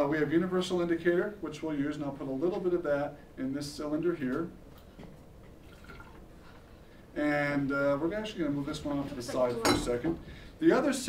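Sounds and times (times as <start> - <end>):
quiet room hiss: 0.0 - 11.0
liquid drips into glass cylinder: 5.6 - 6.3.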